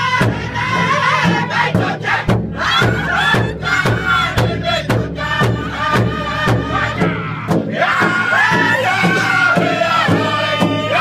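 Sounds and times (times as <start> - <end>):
large drum struck in unison: 0.0 - 11.0
men singing in high voices: 0.0 - 11.0.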